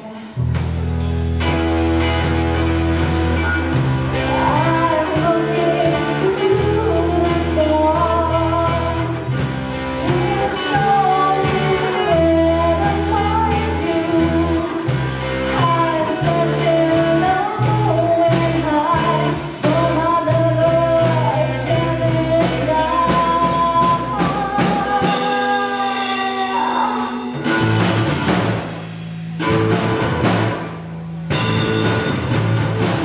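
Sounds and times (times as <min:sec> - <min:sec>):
rock band playing: 0:00.2 - 0:33.0
bending lead melody: 0:00.4 - 0:33.0.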